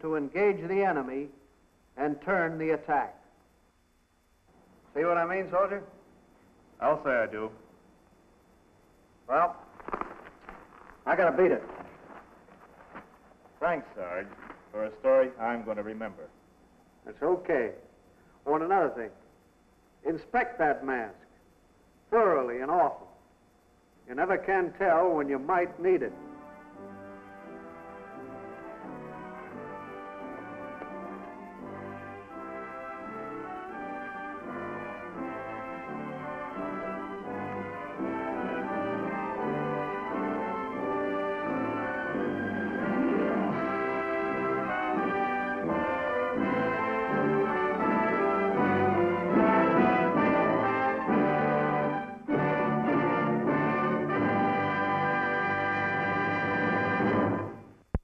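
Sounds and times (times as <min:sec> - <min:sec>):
brass-led orchestral music: 0:25.5 - 0:57.7.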